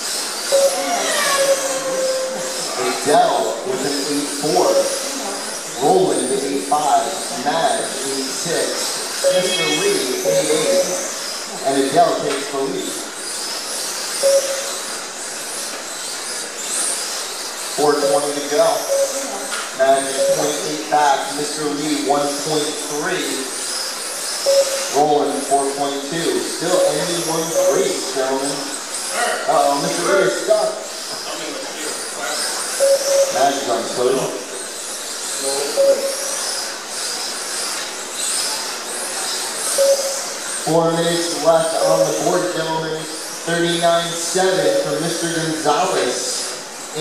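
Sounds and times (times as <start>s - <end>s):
small electric motors whining: 0.0s - 47.0s
tyres hissing on track: 0.0s - 47.0s
short beep: 0.5s - 3.0s, 9.2s - 11.2s, 14.2s - 14.8s, 18.7s - 19.5s, 20.1s - 20.9s, 24.5s - 25.0s, 26.7s - 28.2s, 32.8s - 33.7s, 35.8s - 36.4s, 39.8s - 40.3s
man speaking: 1.8s - 5.1s, 5.7s - 13.0s, 17.8s - 19.0s, 19.8s - 23.5s, 24.9s - 32.4s, 33.2s - 34.5s, 40.7s - 47.0s.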